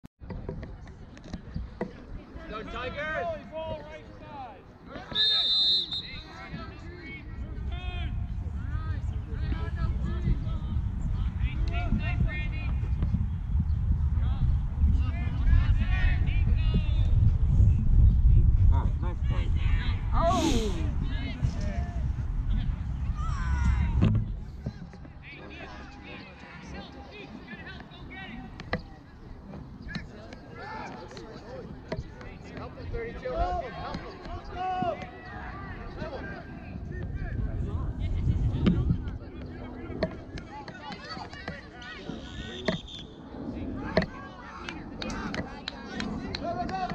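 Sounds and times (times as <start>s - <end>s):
referee's whistle blast: 5.1s - 6.4s
distant players shouting: 33.2s - 36.5s.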